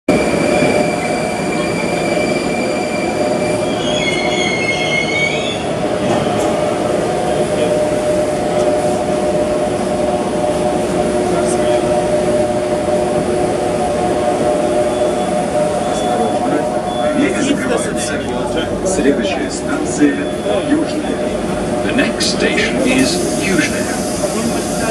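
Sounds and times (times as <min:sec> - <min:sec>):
metro train rumble: 0:00.1 - 0:24.9
high wavering squeal: 0:00.2 - 0:05.8.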